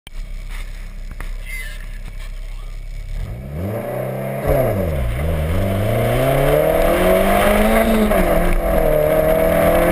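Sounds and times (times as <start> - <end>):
car engine idling and revving: 0.1 - 9.9.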